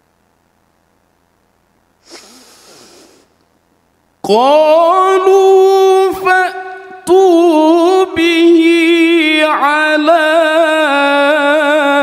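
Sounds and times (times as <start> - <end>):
hissing breath into microphone: 2.0 - 3.4
person reciting: 4.2 - 12.0.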